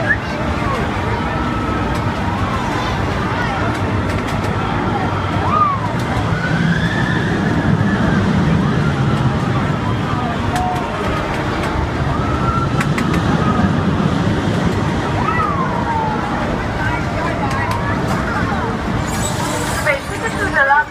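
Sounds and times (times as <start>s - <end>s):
fairground ride rushing: 0.0s - 20.9s
riders whooping and shrieking: 4.6s - 9.8s, 12.0s - 14.0s, 15.1s - 16.5s.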